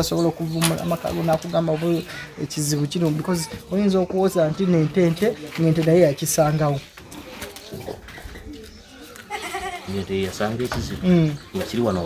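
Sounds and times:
farm animal calling: 9.0 - 10.1.

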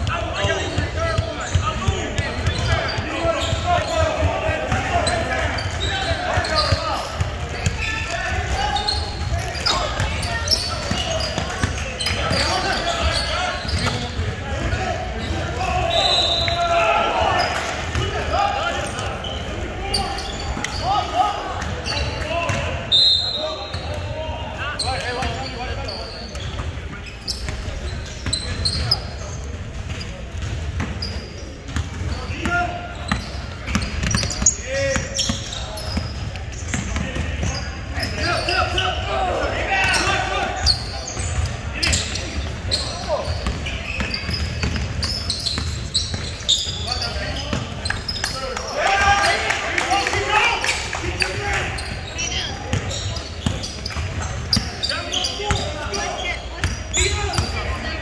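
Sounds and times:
voices echoing in gym: 0.0 - 58.0.

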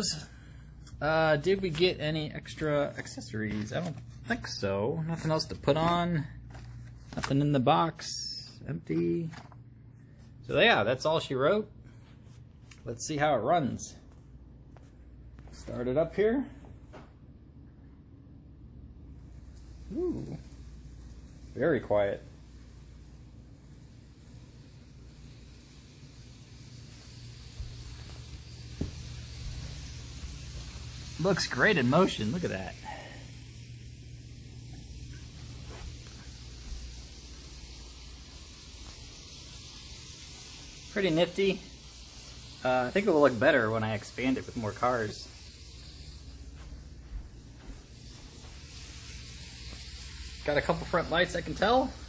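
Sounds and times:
model train wheels rolling on rails: 19.2 - 46.8, 47.6 - 52.0.

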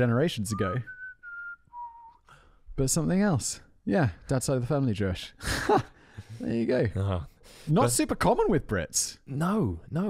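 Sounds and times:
person whistling: 0.5 - 2.4.

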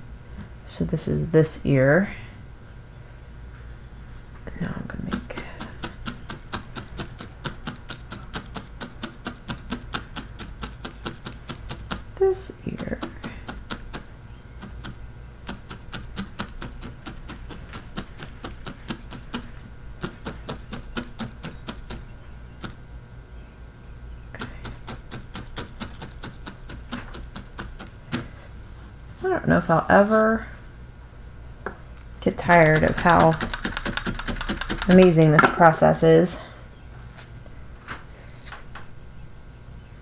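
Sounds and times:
felting needle ticking: 5.1 - 22.8, 24.3 - 28.3, 32.3 - 35.3.

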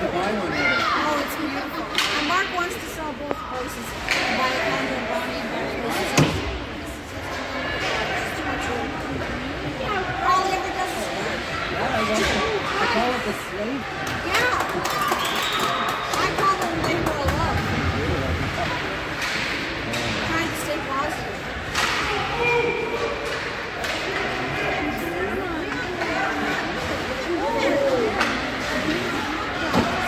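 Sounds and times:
hockey sticks and puck clacking: 1.3 - 4.9, 18.4 - 24.6, 25.5 - 30.0.

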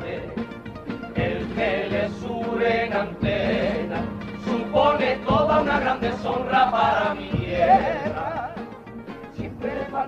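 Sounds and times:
choir singing: 0.0 - 8.6, 9.3 - 10.0
low accompaniment beats: 0.0 - 10.0.

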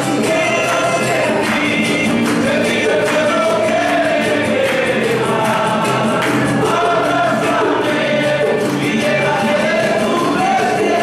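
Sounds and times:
acoustic and electric guitars: 0.0 - 11.0
congregation singing a hymn: 0.0 - 11.0
hand clapping: 0.0 - 11.0.

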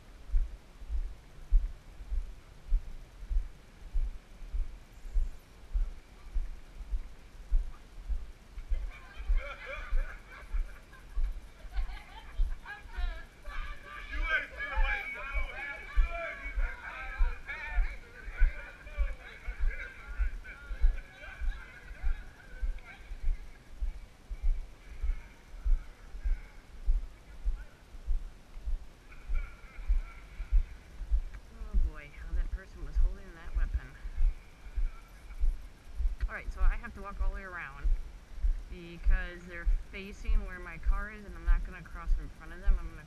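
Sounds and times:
footsteps walking: 0.0 - 12.6, 14.2 - 40.4
faint voices talking: 5.7 - 43.0.

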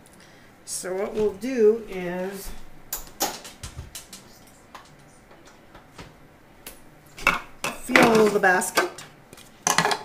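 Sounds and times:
objects being handled and set down: 7.2 - 10.0.

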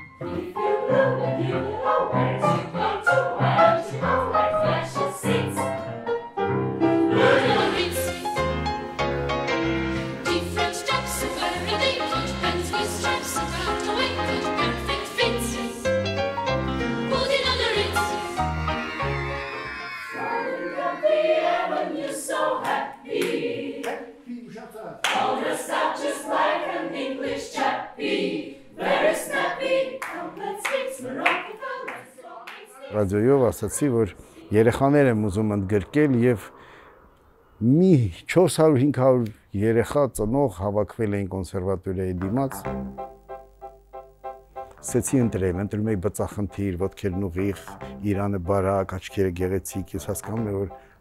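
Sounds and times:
choir singing: 0.1 - 6.1, 6.8 - 24.3, 25.0 - 37.8.

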